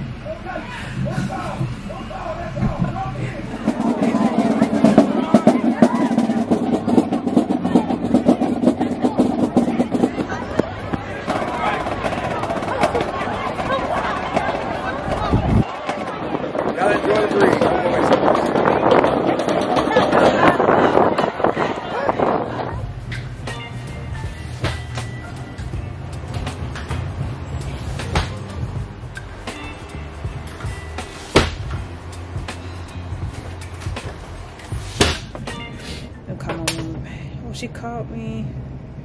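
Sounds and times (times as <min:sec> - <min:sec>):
crowd voices: 0:00.0 - 0:37.8
marching band playing: 0:03.5 - 0:10.6.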